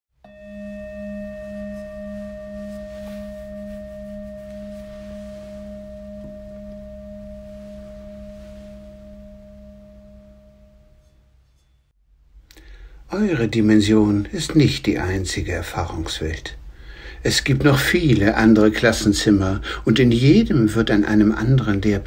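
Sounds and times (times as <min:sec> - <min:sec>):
singing bowl ringing: 0:00.2 - 0:11.9.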